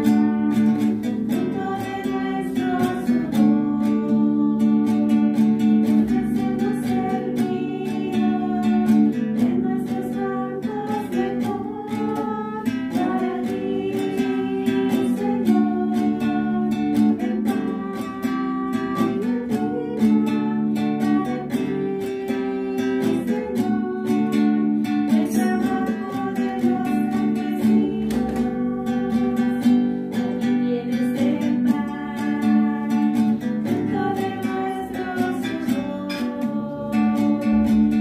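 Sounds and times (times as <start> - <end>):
acoustic guitar strumming: 0.0 - 38.0
people singing a hymn: 0.0 - 38.0.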